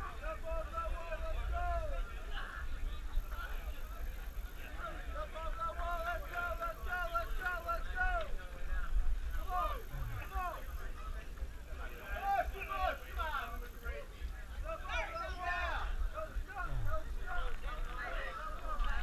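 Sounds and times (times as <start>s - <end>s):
people calling out and talking: 0.0s - 19.0s.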